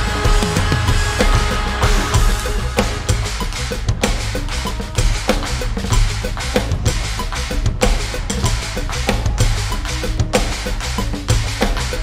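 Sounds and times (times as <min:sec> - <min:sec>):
bass-heavy metal band music: 0:00.0 - 0:12.0
electronic drum kit playing: 0:00.0 - 0:12.0.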